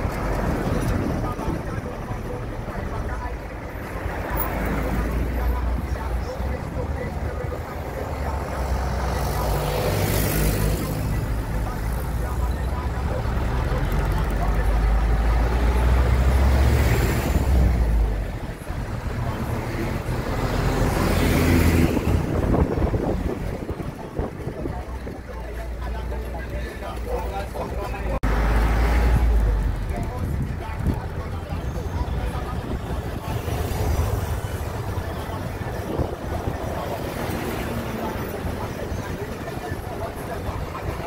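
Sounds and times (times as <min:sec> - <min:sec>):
bus engine rumble: 0:00.0 - 0:41.0
road noise: 0:00.0 - 0:41.0
vehicles passing: 0:00.0 - 0:41.0.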